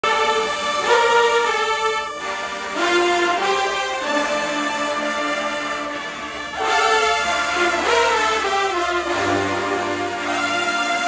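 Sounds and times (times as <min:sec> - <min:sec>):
marching band brass chords: 0:00.0 - 0:11.0.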